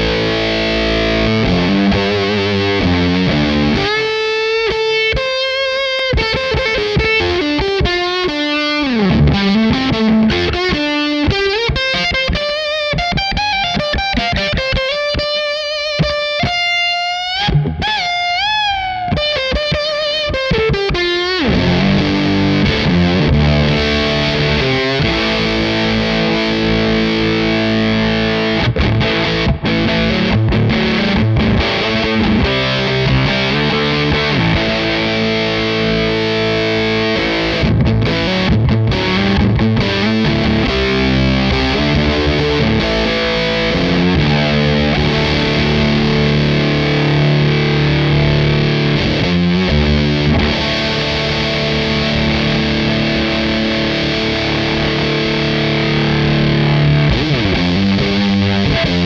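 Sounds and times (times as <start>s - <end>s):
distorted electric guitar: 0.0s - 59.0s.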